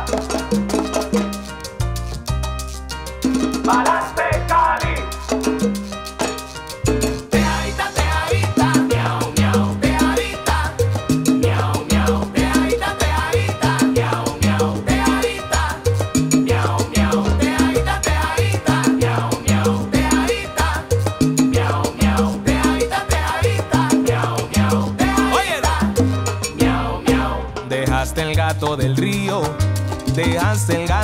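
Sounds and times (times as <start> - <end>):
salsa band instrumental: 0.0 - 31.0.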